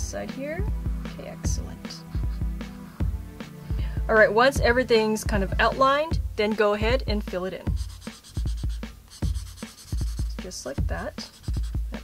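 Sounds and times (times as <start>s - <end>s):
felt marker scribbling on paper: 1.9s - 3.0s, 7.6s - 12.0s.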